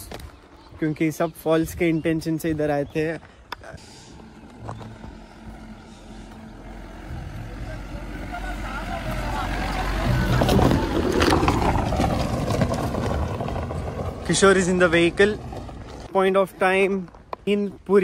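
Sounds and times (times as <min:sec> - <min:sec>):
tyres on gravel: 0:00.0 - 0:18.0
car engine hum: 0:03.4 - 0:16.1.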